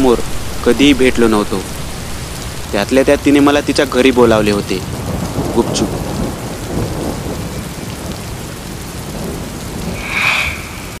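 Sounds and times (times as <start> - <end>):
low rumbling thunder: 0.0 - 11.0
steady rain: 0.0 - 11.0.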